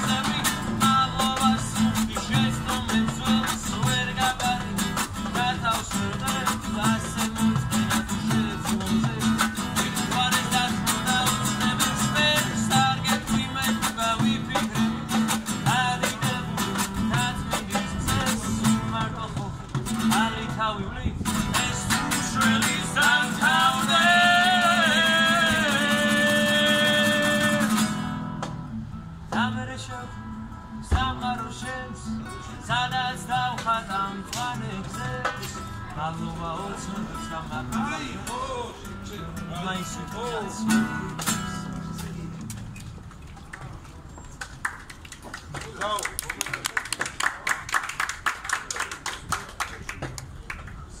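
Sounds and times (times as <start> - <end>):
acoustic guitar: 0.0 - 45.5
hand clapping: 44.4 - 50.8.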